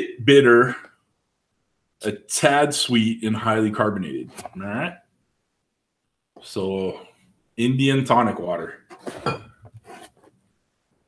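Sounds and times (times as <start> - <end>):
glass bottle clink: 9.1 - 9.6.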